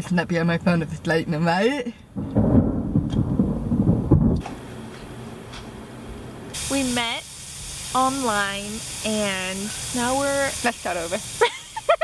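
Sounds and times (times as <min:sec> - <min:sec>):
thunder rumbling: 0:02.1 - 0:04.9
faint steady hiss: 0:04.4 - 0:12.0.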